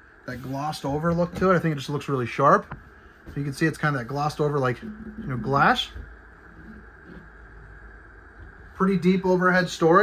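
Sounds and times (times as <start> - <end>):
faint hiss: 0.0 - 10.0
low steady hum: 0.0 - 10.0.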